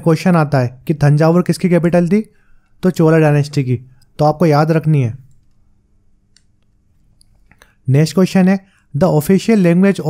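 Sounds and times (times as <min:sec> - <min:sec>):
man speaking: 0:00.0 - 0:05.3, 0:07.8 - 0:10.0
faint steady hum: 0:00.0 - 0:10.0.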